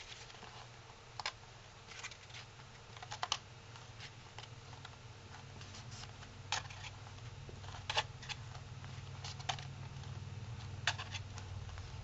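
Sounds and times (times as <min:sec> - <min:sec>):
folded paper crackling and ticking: 0:00.0 - 0:12.0.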